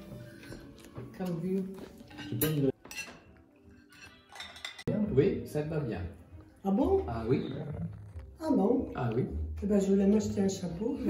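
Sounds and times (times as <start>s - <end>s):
dishes and cutlery clinking: 0.0s - 5.1s.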